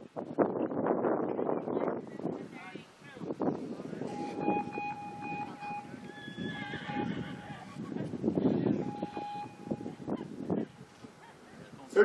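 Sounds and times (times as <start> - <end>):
outdoor noise: 0.0 - 12.0
steady high tone: 4.1 - 7.6, 8.7 - 10.2.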